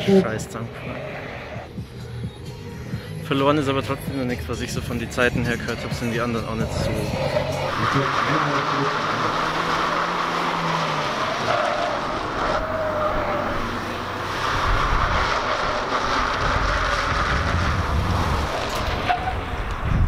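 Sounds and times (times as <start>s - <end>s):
car engine revving and braking: 0.0s - 2.0s, 4.6s - 20.0s.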